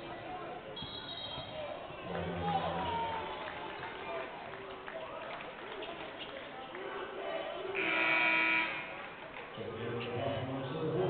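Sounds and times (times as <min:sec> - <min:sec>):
crowd chatter: 0:00.0 - 0:11.0
electronic arena horn: 0:07.7 - 0:09.0.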